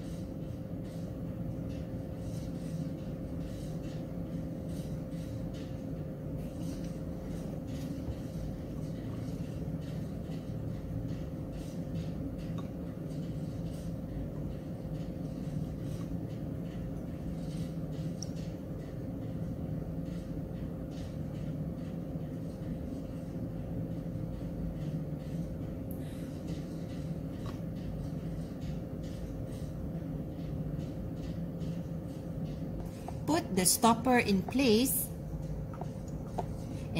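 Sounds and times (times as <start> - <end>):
low background hum and rumble: 0.0 - 36.9.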